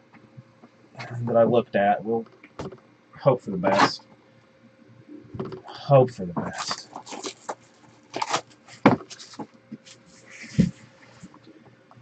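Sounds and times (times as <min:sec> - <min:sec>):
plastic wrap crinkling: 0:06.6 - 0:10.6.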